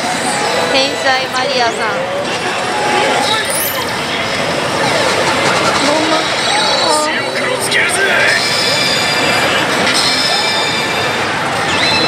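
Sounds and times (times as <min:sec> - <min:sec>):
slot machine sound effects: 0:03.2 - 0:07.0
slot machines electronic sounds: 0:03.2 - 0:07.1
slot machine voices: 0:03.2 - 0:09.6.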